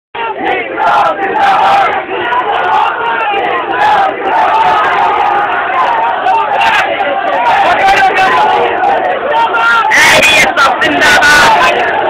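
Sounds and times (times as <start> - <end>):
crowd shouting together: 0.2 - 12.0.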